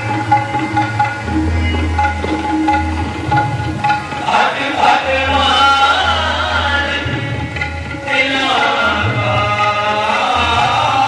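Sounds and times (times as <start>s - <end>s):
musical accompaniment: 0.0s - 11.0s
male voices chanting: 4.3s - 7.2s.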